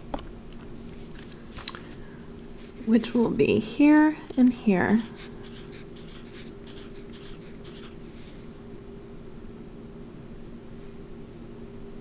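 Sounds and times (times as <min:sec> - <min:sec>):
steady low hum: 0:00.0 - 0:12.0
marker scratching on paper: 0:04.3 - 0:08.1.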